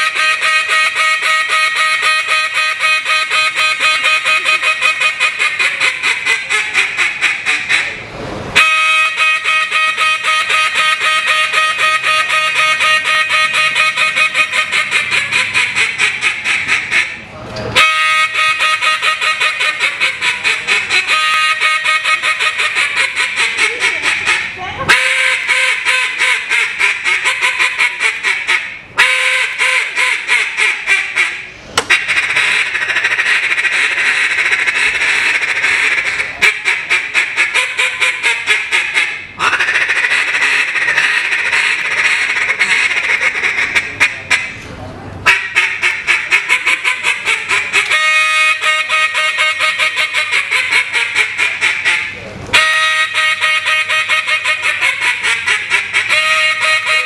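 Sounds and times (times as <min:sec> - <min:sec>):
duck call rapid quacks: 0:00.0 - 0:44.6, 0:45.2 - 0:57.0.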